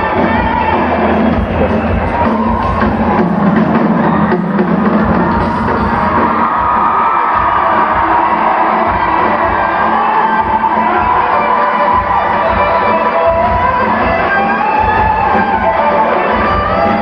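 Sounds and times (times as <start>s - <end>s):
rock band playing live: 0.0s - 17.0s
steady drumbeat: 0.0s - 17.0s
sustained guitar or keyboard: 0.0s - 17.0s.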